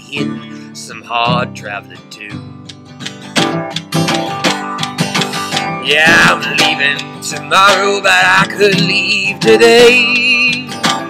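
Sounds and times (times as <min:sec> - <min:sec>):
person singing: 0:00.0 - 0:02.4, 0:05.3 - 0:11.0
acoustic guitar strumming: 0:00.0 - 0:11.0.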